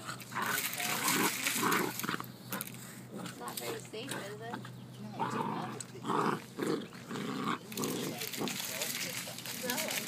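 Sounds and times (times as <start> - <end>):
puppies vocalizing while playing: 0.0 - 10.0.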